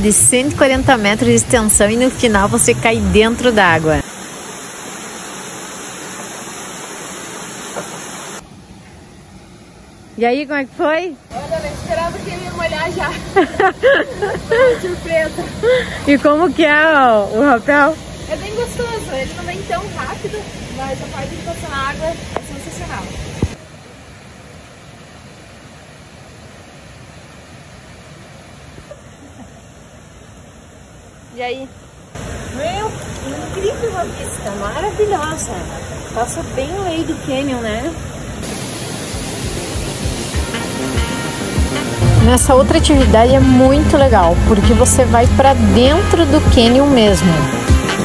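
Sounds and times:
waterfall rushing: 0:00.0 - 0:08.4, 0:11.3 - 0:24.0, 0:32.1 - 0:48.0.

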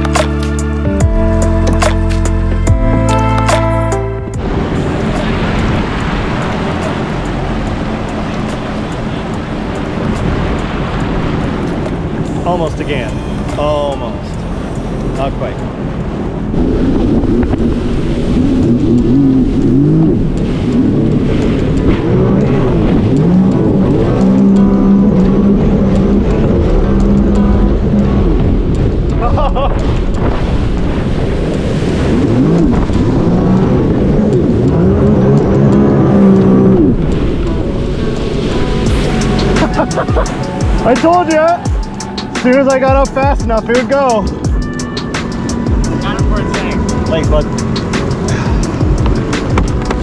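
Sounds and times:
music playing: 0:00.0 - 0:16.5, 0:34.4 - 0:50.0
watercraft engine running at speed: 0:00.0 - 0:50.0.

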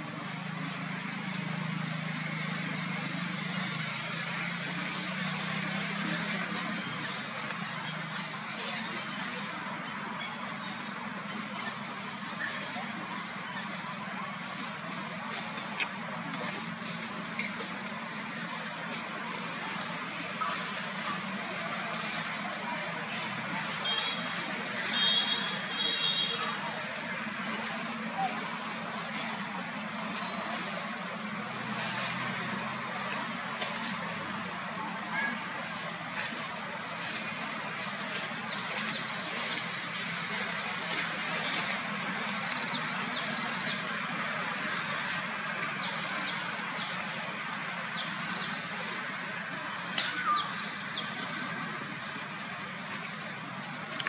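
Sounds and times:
outdoor background noise: 0:00.0 - 0:54.0.

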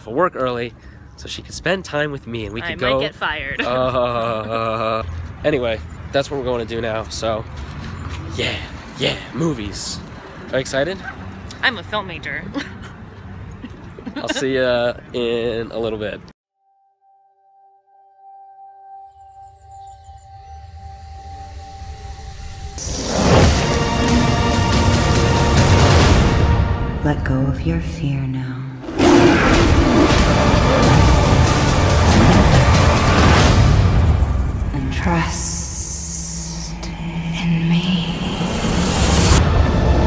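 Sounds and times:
faint high twinkle: 0:16.6 - 0:22.8
dark ominous music: 0:18.3 - 0:27.6, 0:28.8 - 0:40.0
low rumble: 0:29.3 - 0:40.0.

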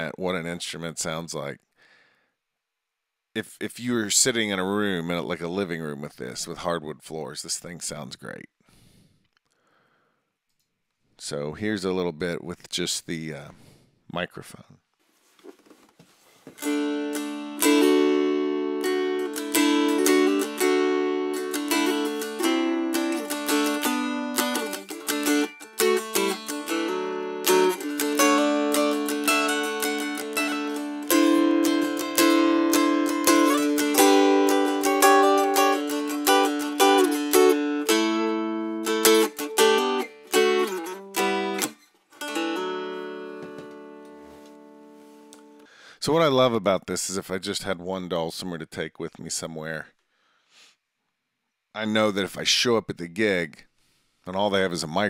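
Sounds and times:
strummed mountain dulcimer: 0:16.6 - 0:44.5.

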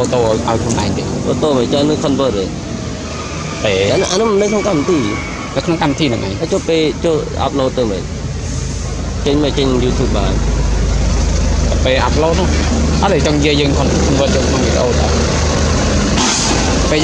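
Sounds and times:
voices: 0:00.0 - 0:15.9, 0:16.7 - 0:17.0
low engine rumble: 0:00.0 - 0:17.0.

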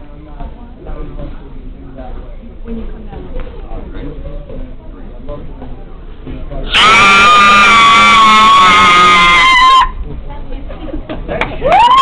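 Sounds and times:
woman screaming: 0:06.7 - 0:09.9.

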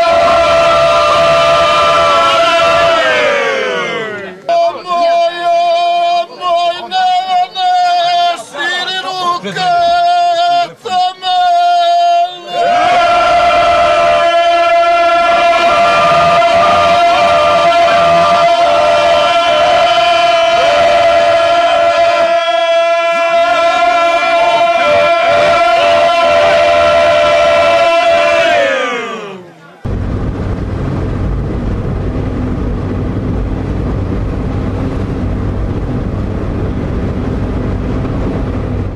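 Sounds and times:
low rumbling noise: 0:00.0 - 0:04.2, 0:12.6 - 0:28.8, 0:29.8 - 0:38.9
man holding a long note: 0:11.5 - 0:30.0
men singing in harmony: 0:12.8 - 0:28.4.

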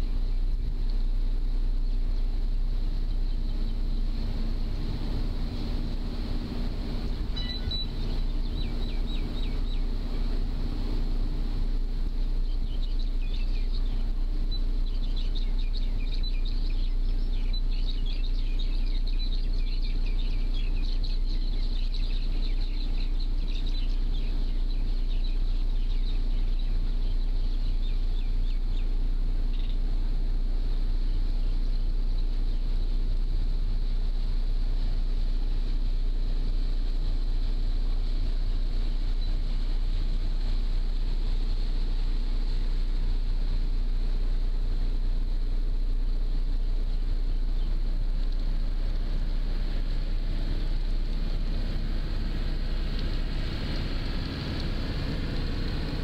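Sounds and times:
boat engine droning: 0:00.0 - 0:56.0
birds chirping: 0:01.7 - 0:34.0, 0:34.7 - 0:45.3, 0:46.7 - 0:56.0.

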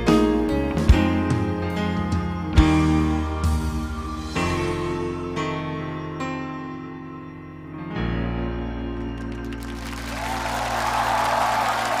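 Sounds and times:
audience applause and cheering: 0:09.1 - 0:12.0.

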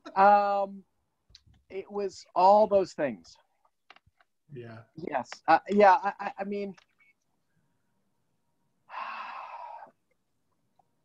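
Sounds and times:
breath: 0:08.9 - 0:10.0.

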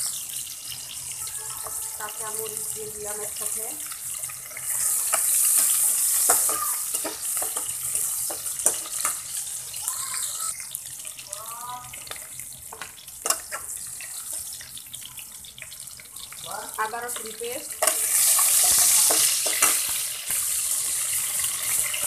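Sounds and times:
onions sizzling in hot oil: 0:00.0 - 0:22.0
metal spatula scraping pan: 0:17.8 - 0:22.0.

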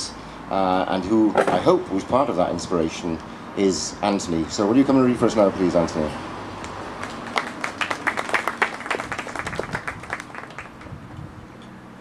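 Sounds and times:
audience clapping: 0:06.9 - 0:10.9.

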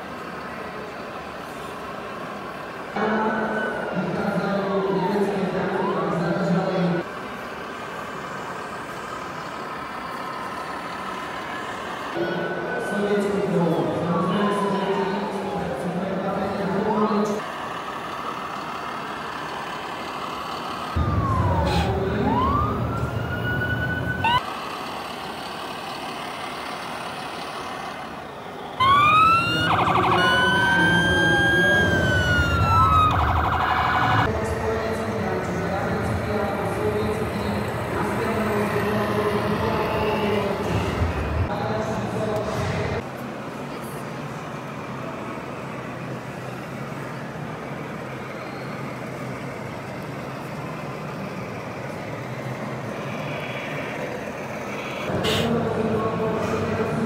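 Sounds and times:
hall background noise: 0:00.0 - 0:57.0
simulated diesel truck engine: 0:00.0 - 0:57.0
toy electronic siren wailing: 0:21.0 - 0:24.6, 0:28.8 - 0:34.3.

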